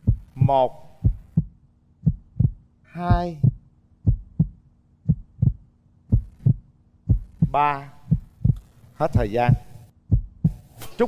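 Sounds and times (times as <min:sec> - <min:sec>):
heartbeat thumps: 0:00.0 - 0:10.8.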